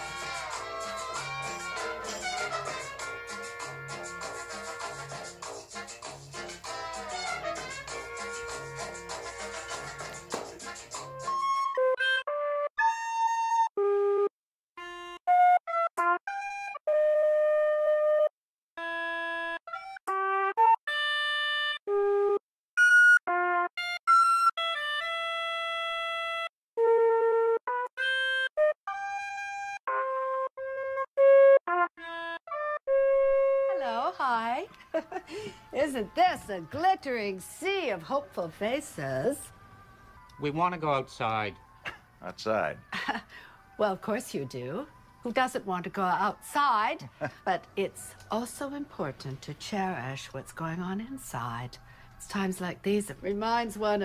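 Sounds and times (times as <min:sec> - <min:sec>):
recorder playing slow melody: 0:11.0 - 0:37.2.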